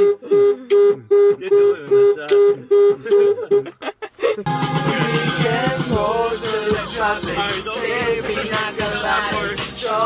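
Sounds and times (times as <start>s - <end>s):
car horn beeping: 0.0s - 3.8s
people laughing: 2.6s - 5.3s.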